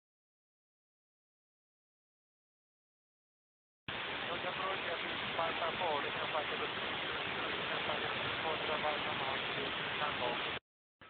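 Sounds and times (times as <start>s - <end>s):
radio static hiss: 3.9s - 10.6s
faint radio speech: 4.3s - 10.4s.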